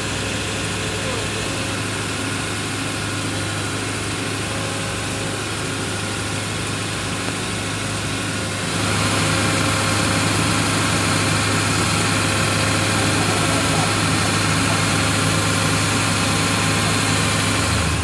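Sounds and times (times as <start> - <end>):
engine idling: 0.0 - 18.0.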